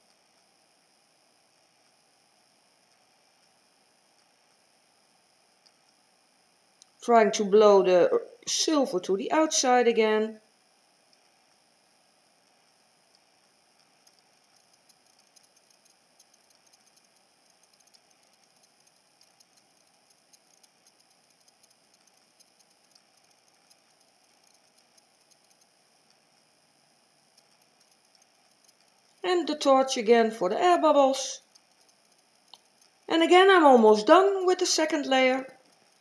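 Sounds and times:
faint ticks: 0:00.0 - 0:07.0, 0:11.0 - 0:29.2, 0:31.3 - 0:33.2, 0:35.3 - 0:36.0.

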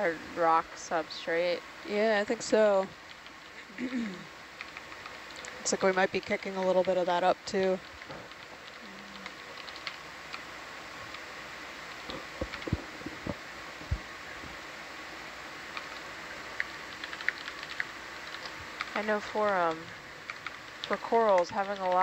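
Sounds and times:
equipment hum: 0:00.0 - 0:22.0
computer keyboard typing: 0:04.6 - 0:07.2, 0:07.8 - 0:10.4, 0:12.0 - 0:13.4, 0:15.8 - 0:16.0, 0:16.6 - 0:22.0.

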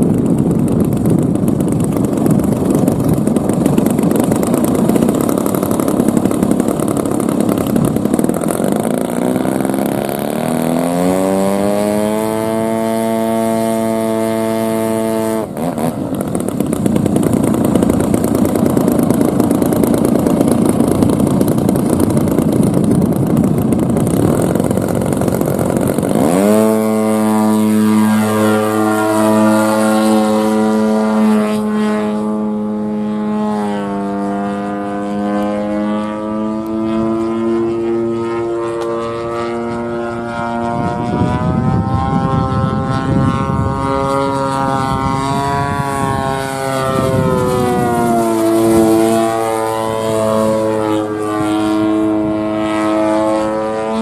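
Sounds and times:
model airplane engine: 0:00.0 - 0:54.0.

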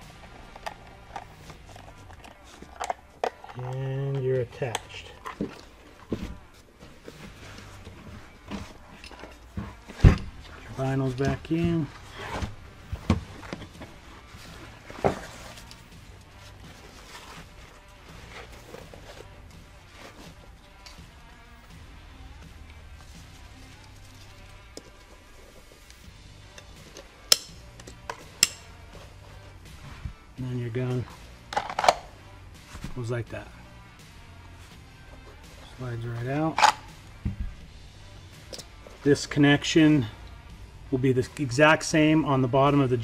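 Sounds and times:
nylon harness handling: 0:00.1 - 0:21.5, 0:34.6 - 0:36.9.

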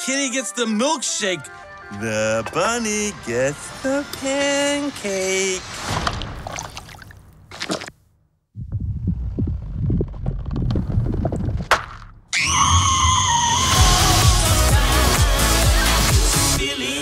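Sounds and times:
low rumble: 0:08.5 - 0:12.3
sharp crack: 0:11.5 - 0:12.2
loud electronic music: 0:13.7 - 0:17.0.

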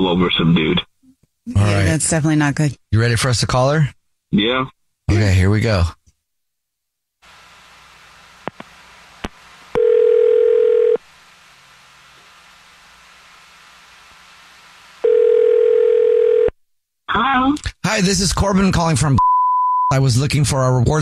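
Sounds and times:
telephone ringback tone: 0:09.8 - 0:11.0, 0:15.0 - 0:16.5.

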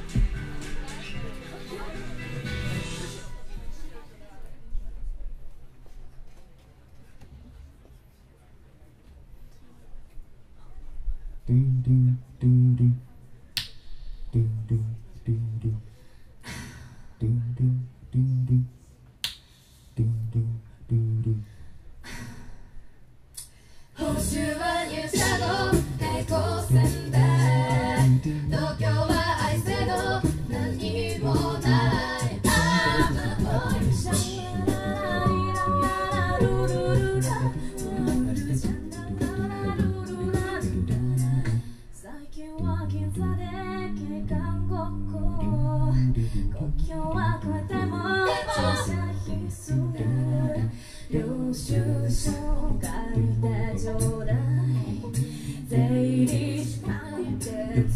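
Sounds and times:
vocal percussion: 0:11.4 - 0:22.6, 0:23.4 - 0:57.9
finger snap: 0:13.6 - 0:14.1, 0:19.2 - 0:19.6, 0:23.3 - 0:23.6
a cappella group singing in harmony: 0:23.9 - 0:57.9.

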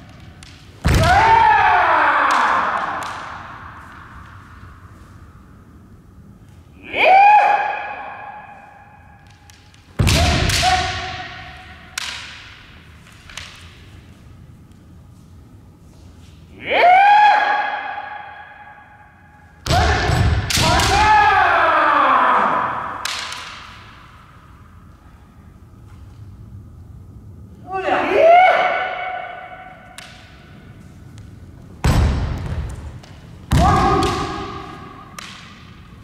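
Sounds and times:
people yelling: 0:00.9 - 0:03.1, 0:19.7 - 0:23.1, 0:27.7 - 0:29.8
bamboo sword strikes: 0:09.3 - 0:13.8, 0:19.6 - 0:21.2, 0:23.0 - 0:24.0, 0:33.5 - 0:35.7.

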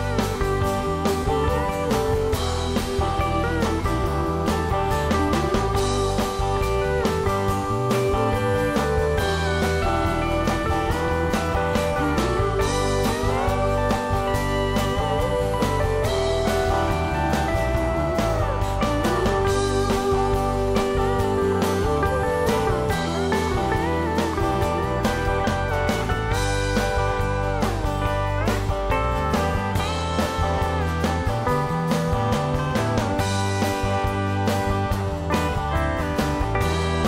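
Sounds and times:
bass guitar: 0:00.0 - 0:37.0
guitar: 0:00.0 - 0:37.0
pedal steel guitar gliding: 0:00.0 - 0:37.0
steady drum beat: 0:00.0 - 0:37.0.

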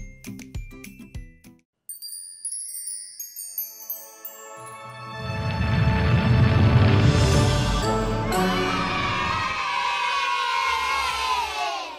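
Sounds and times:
jingle beat: 0:00.0 - 0:05.9, 0:06.9 - 0:09.5
children cheering: 0:07.8 - 0:11.9.

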